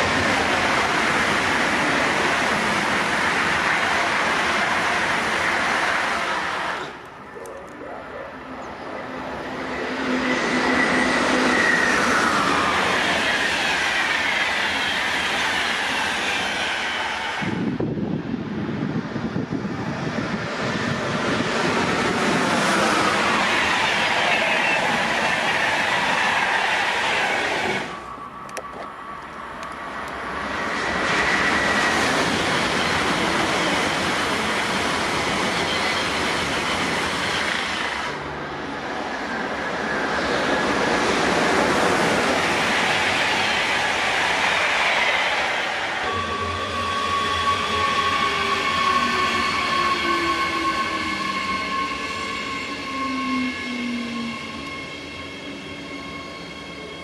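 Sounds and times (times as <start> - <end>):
trains rumbling and clattering: 0.0 - 57.0
whining tones: 42.5 - 57.0.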